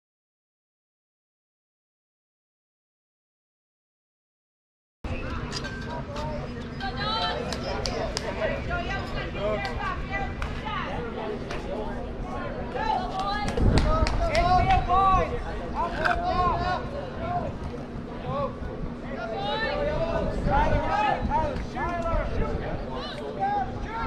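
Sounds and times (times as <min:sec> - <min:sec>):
chatter of voices: 0:05.1 - 0:24.0.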